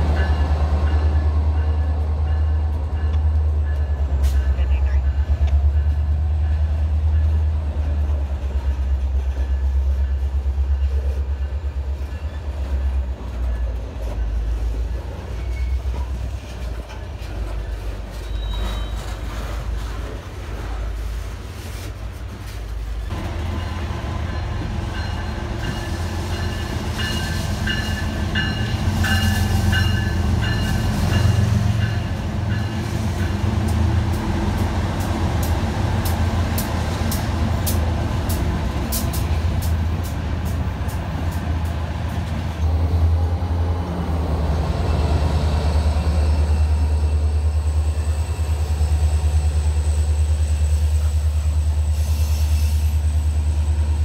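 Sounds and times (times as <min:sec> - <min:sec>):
diesel locomotive engine running: 0:00.0 - 0:54.0
freight train cars rumbling: 0:00.0 - 0:54.0
steel wheels squealing: 0:15.3 - 0:16.0, 0:17.8 - 0:19.6.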